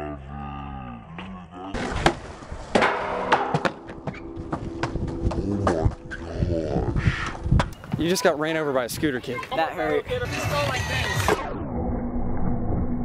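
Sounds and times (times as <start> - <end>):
skateboard grinding on metal rail: 1.8 - 4.9.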